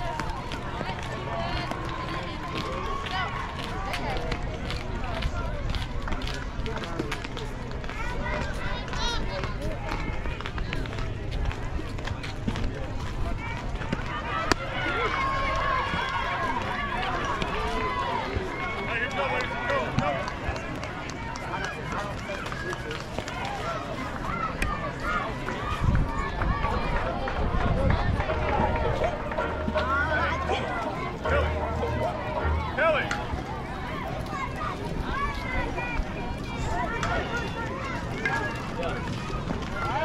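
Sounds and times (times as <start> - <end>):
crowd voices talking and calling: 0.0 - 40.0
wind rumble on microphone: 25.6 - 29.2.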